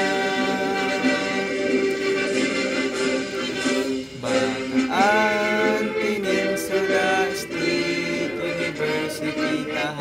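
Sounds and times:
man singing a hymn: 0.0 - 1.8, 4.2 - 10.0.

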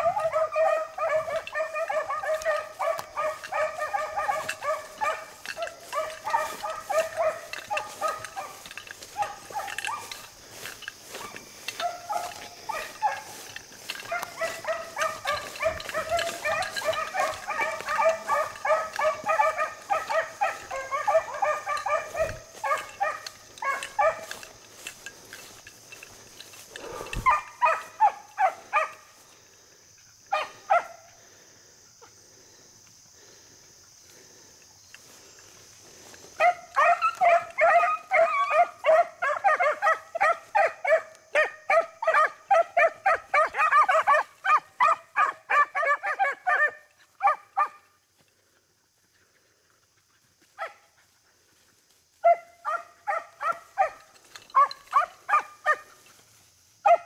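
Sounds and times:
hounds baying: 0.0 - 32.4, 34.1 - 56.2, 56.8 - 57.0.

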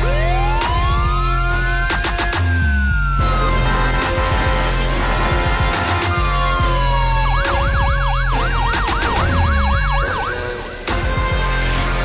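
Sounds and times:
news theme music: 3.1 - 12.0
yelping siren effect: 6.8 - 10.8
sharp musical hit: 8.9 - 11.0.

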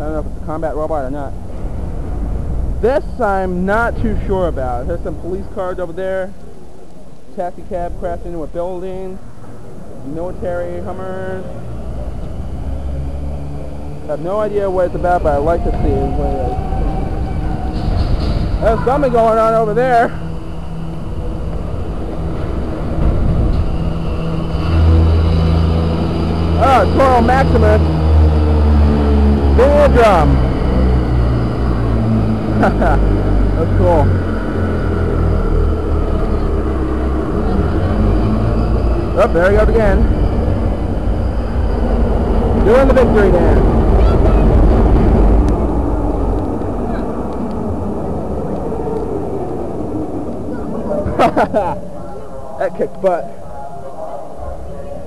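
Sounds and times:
loud low drone: 0.0 - 55.0
rumbling wash of hall noise: 0.0 - 55.0
steady low hum: 0.0 - 55.0.

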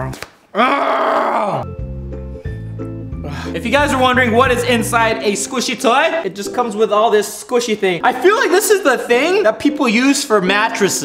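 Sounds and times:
man groaning with mouth full: 0.5 - 1.7
background music: 1.0 - 11.0.

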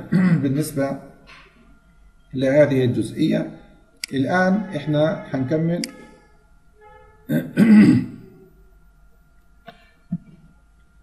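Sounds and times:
man clearing his throat: 0.0 - 0.6, 7.3 - 8.3.

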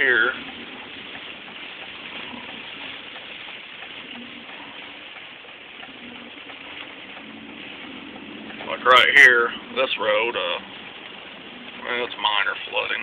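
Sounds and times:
heavy rain on a car: 0.0 - 13.0
tyre road noise on wet road: 0.0 - 13.0.

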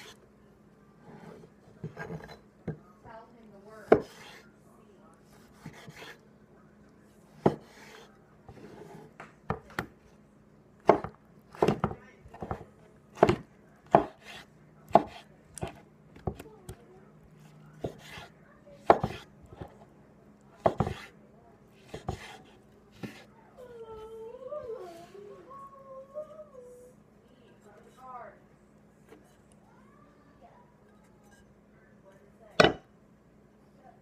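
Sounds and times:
knife chopping on wooden board: 3.9 - 4.4, 5.4 - 6.2, 7.4 - 9.9, 10.8 - 12.6, 13.2 - 16.4, 17.8 - 19.8, 20.6 - 21.1, 21.8 - 23.3, 32.6 - 32.8.

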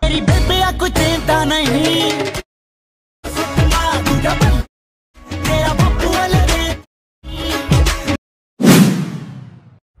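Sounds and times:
background music: 0.0 - 2.4, 3.3 - 8.2
whoosh sound effect: 8.6 - 9.8.

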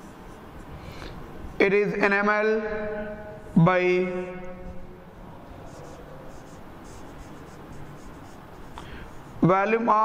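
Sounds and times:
marker scratching on whiteboard: 0.0 - 2.2, 4.3 - 9.9.

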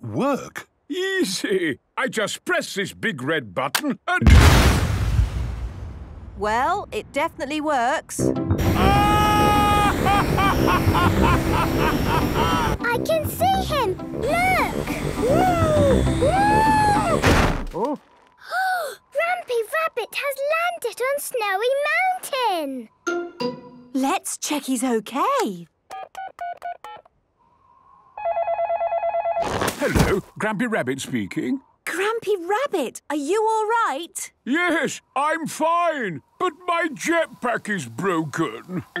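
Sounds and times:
jetpack rushing roar: 8.6 - 12.8
faint dial tone: 28.2 - 29.4
electronic telephone trilling ring: 28.2 - 29.5.

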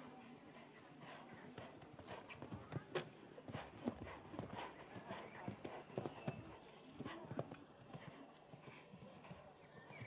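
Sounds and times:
horse hoofbeats on sand: 1.0 - 10.0.

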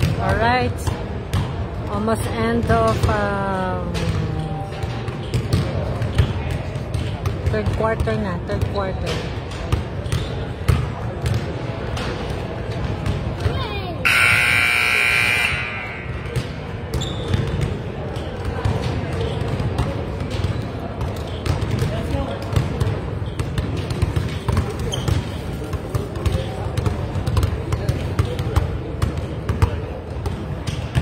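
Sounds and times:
chatter in a hall: 0.0 - 31.0
basketballs bouncing on hardwood: 3.9 - 8.8, 9.6 - 11.5, 16.3 - 31.0
scoreboard buzzer: 14.0 - 16.4.

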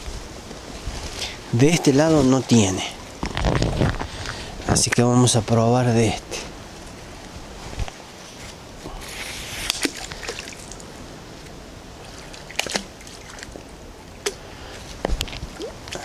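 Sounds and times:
creek water running: 0.0 - 6.8, 8.0 - 16.0.

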